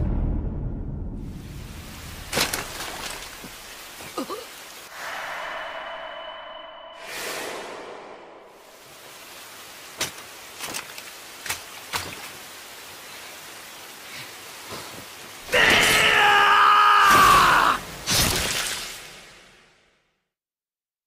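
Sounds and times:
steady rain hiss: 1.2 - 19.9
man screaming: 15.5 - 17.8.

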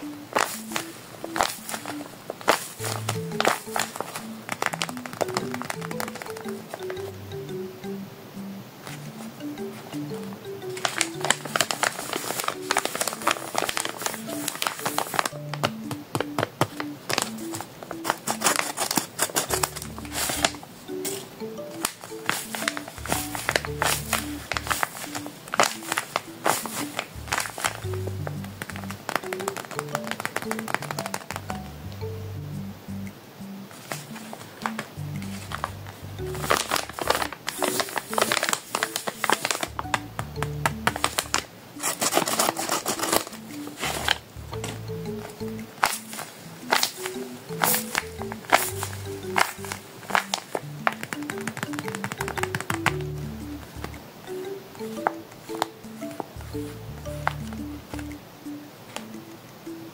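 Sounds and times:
paper crinkling and crackling: 0.0 - 7.0, 9.9 - 31.6, 33.7 - 53.2
background music: 0.0 - 59.9.

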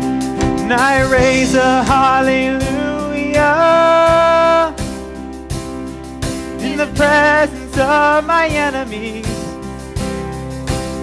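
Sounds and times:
acoustic guitar: 0.0 - 11.0
bass guitar: 0.0 - 11.0
keyboard: 0.0 - 11.0
people singing: 0.6 - 4.8, 6.6 - 9.4.

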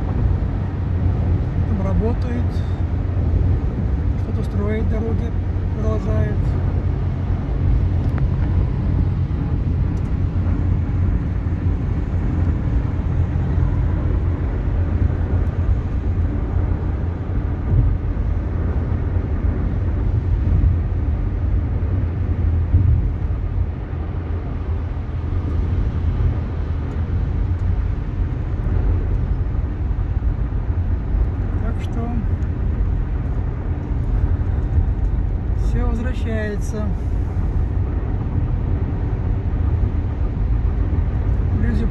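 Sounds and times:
car tyres and engine rumble: 0.0 - 41.9.

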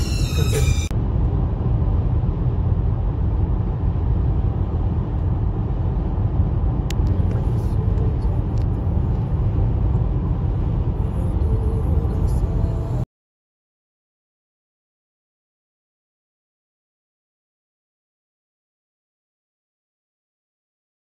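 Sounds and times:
car interior road rumble: 0.0 - 13.0.

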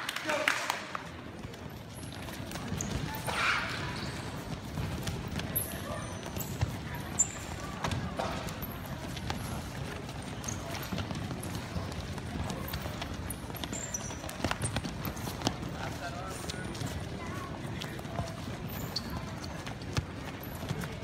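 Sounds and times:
shoe squeaks: 1.8 - 21.0.

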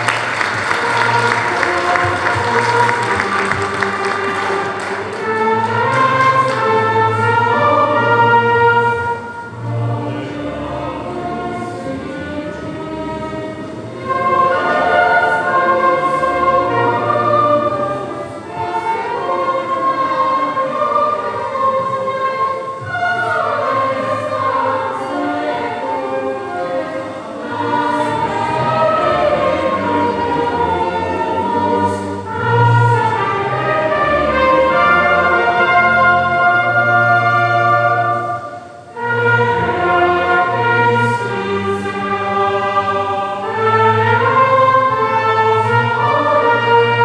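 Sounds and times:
choir singing: 0.0 - 47.0
orchestral accompaniment: 0.0 - 47.0.

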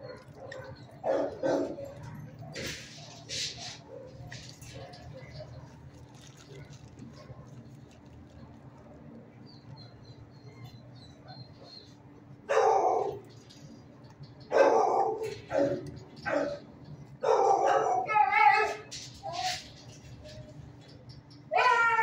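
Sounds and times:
dog barking: 0.0 - 5.8, 12.5 - 13.2, 14.5 - 16.6, 17.2 - 18.9.

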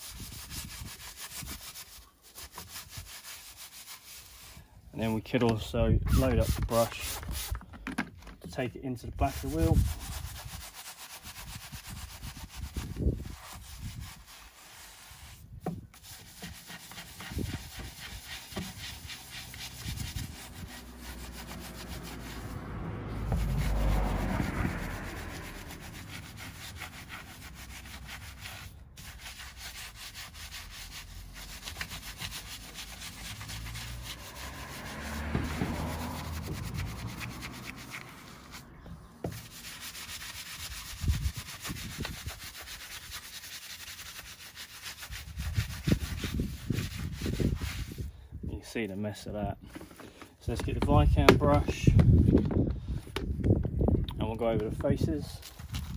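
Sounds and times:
brush scrubbing wet wheel: 0.0 - 7.7, 8.4 - 48.1, 54.4 - 55.9.

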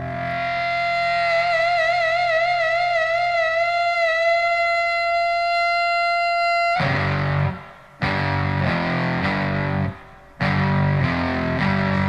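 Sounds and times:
sustained distorted electric guitar note: 0.0 - 12.0.

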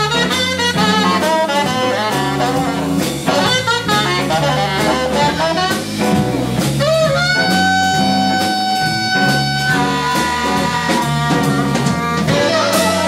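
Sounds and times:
drum kit: 0.0 - 13.0
electric guitar: 0.0 - 13.0
saxophone playing: 0.0 - 13.0
stepping bass notes: 0.0 - 13.0.

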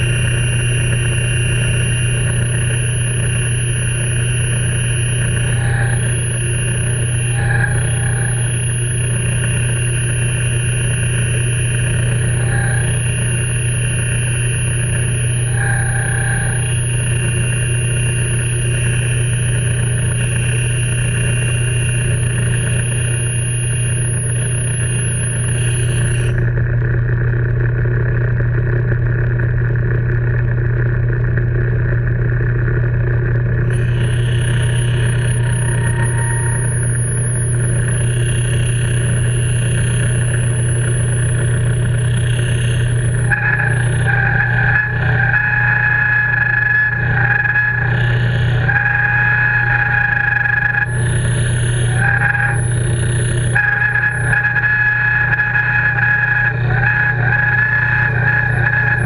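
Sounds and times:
metal lathe humming: 0.0 - 26.6, 33.6 - 59.0.

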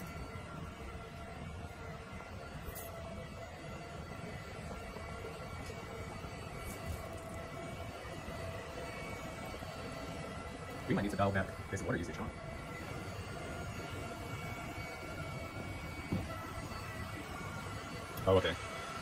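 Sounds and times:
thin whining tones: 0.0 - 19.0
robot mop motor hum: 4.6 - 19.0.

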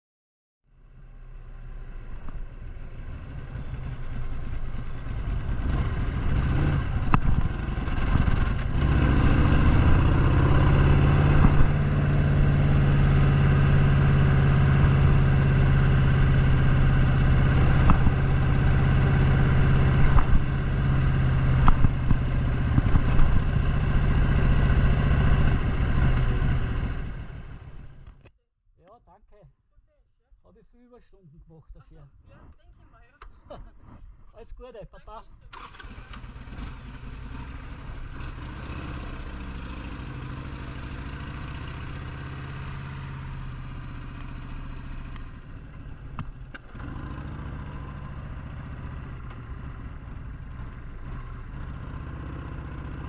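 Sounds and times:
motorcycle engine running: 1.0 - 28.2, 35.6 - 53.0.

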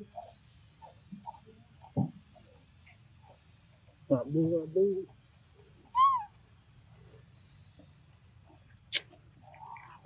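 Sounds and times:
baby monkey squeak: 5.9 - 6.3.

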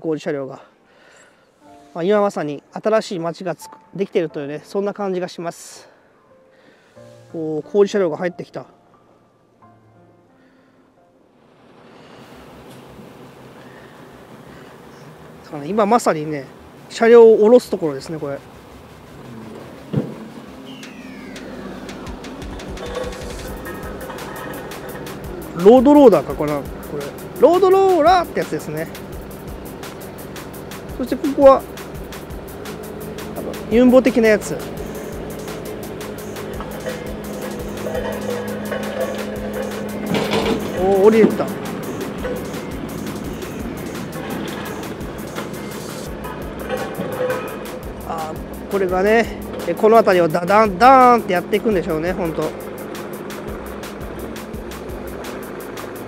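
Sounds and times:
falling whine: 11.5 - 56.0
construction machine engine hum: 11.6 - 56.0
music playing: 17.0 - 56.0.

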